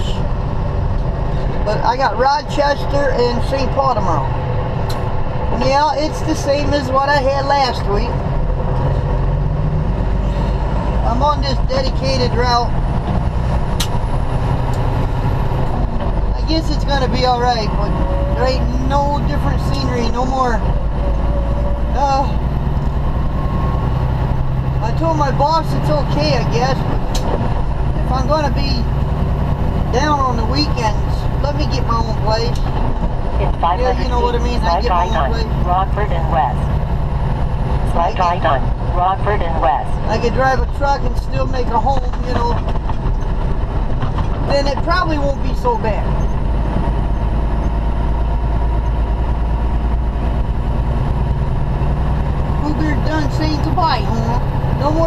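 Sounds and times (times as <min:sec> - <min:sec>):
road noise: 0:00.0 - 0:55.0
truck diesel engine drone: 0:00.0 - 0:55.0.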